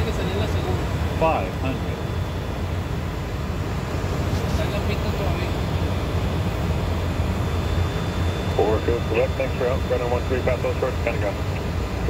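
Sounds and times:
cockpit engine and airflow drone: 0.0 - 12.0.

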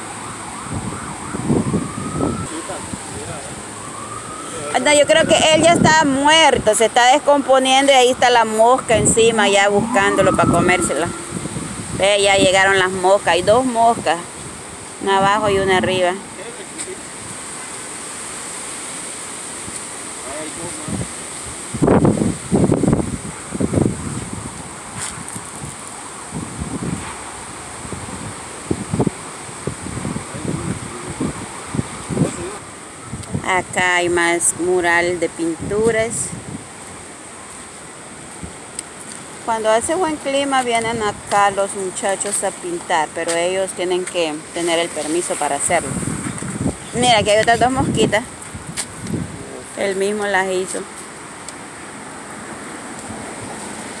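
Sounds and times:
gusty wind buffeting microphone: 0.0 - 16.3, 20.8 - 50.5.

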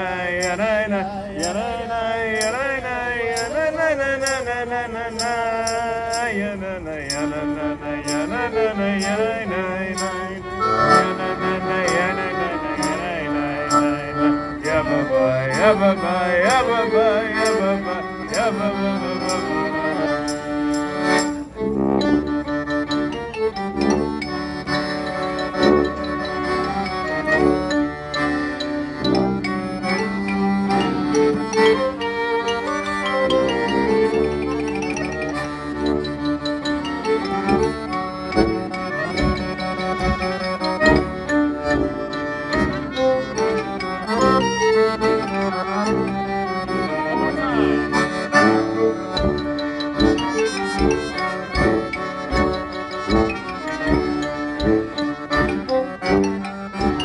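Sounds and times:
accordion: 0.0 - 57.0
violin: 0.0 - 57.0
clarinet: 2.4 - 57.0
sousaphone bass: 6.9 - 57.0
tuba: 7.0 - 57.0
marimba: 8.0 - 57.0
drum beat: 49.2 - 55.7.

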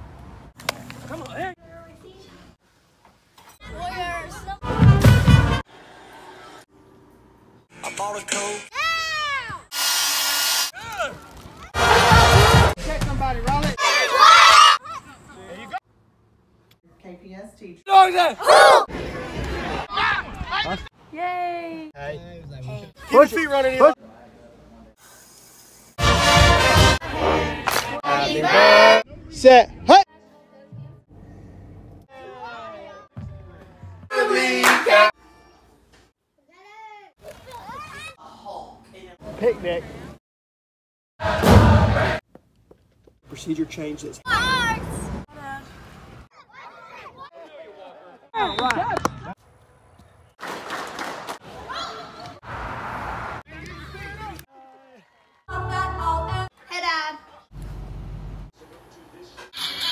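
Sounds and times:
people calling out: 13.8 - 15.2, 17.9 - 18.9, 27.0 - 29.1, 34.1 - 35.6
steady hiss: 24.9 - 26.0.

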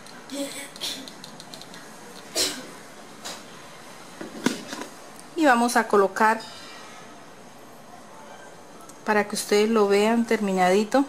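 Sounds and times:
plastic objects clicking on table: 0.0 - 2.3.

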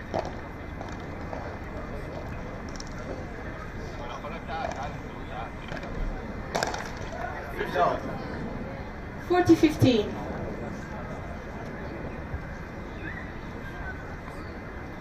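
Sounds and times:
outdoor crowd background: 0.0 - 15.0
racket hitting ball: 6.5 - 7.1.

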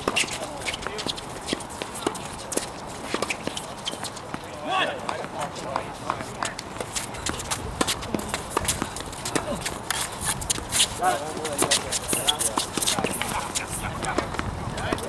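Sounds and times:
racket hitting tennis ball: 0.0 - 4.5, 5.1 - 15.0
footsteps on hard court: 0.0 - 15.0.

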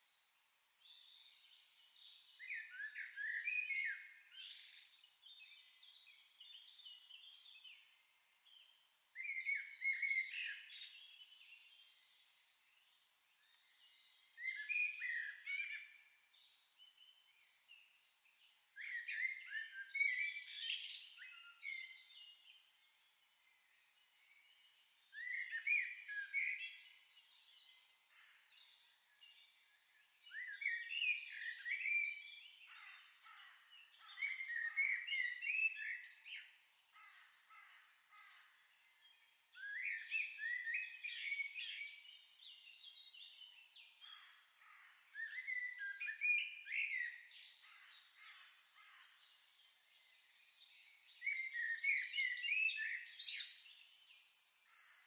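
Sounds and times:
songbird chirping: 0.0 - 55.0.

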